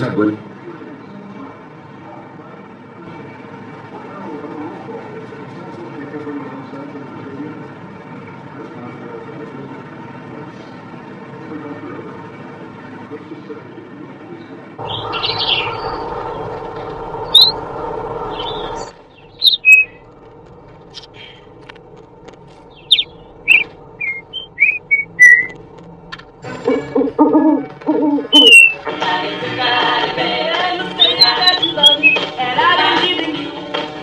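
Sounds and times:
steady background noise: 0:00.0 - 0:34.0
parrot chirping and whistling: 0:14.9 - 0:16.0, 0:17.2 - 0:17.6, 0:18.4 - 0:20.0, 0:22.8 - 0:25.6, 0:28.2 - 0:28.8, 0:31.0 - 0:32.3.

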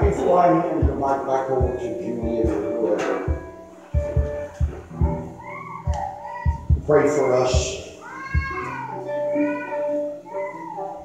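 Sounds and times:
low thumps: 0:00.0 - 0:07.0
background music: 0:00.0 - 0:11.0.

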